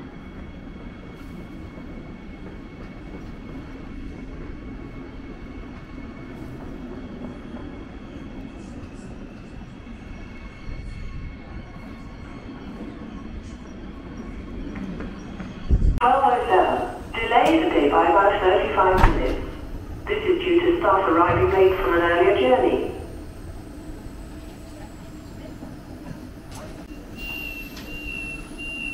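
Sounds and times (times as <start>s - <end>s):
train rumbling: 0.0s - 28.9s.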